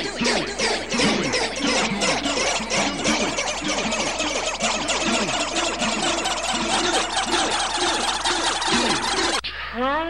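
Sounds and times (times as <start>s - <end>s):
electronic music with gliding tones: 0.0s - 9.5s.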